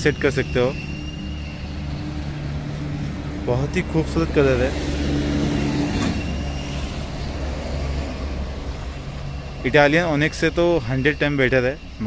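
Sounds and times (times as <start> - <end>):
low mechanical drone: 0.0 - 12.0.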